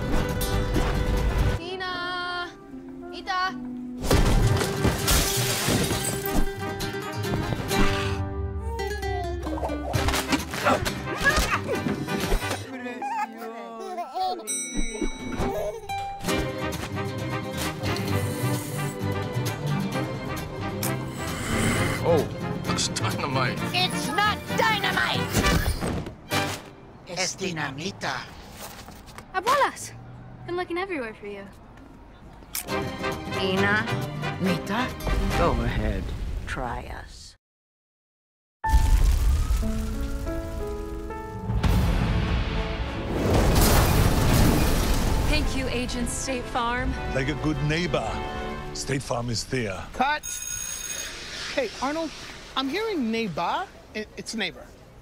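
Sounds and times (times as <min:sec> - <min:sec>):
music: 0:00.0 - 0:12.8, 0:14.8 - 0:26.8, 0:32.6 - 0:36.0, 0:38.7 - 0:44.5, 0:45.2 - 0:49.8
baby cooing: 0:08.6 - 0:10.0, 0:12.9 - 0:14.5
elevator bell chime: 0:14.5 - 0:16.3
dramatic film score music: 0:15.9 - 0:26.6
house fire crackling and rumbling: 0:38.8 - 0:46.3.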